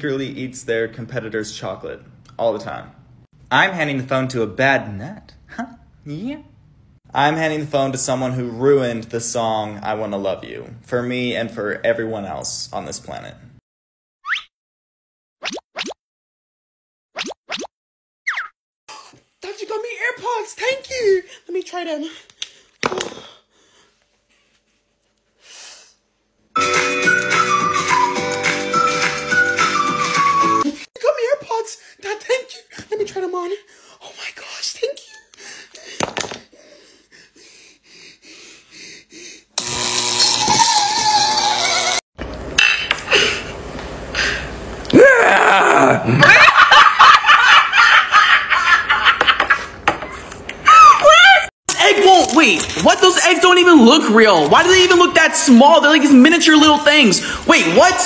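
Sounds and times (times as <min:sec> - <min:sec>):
bloop pop sound effects: 0:15.4 - 0:16.0, 0:17.2 - 0:17.7.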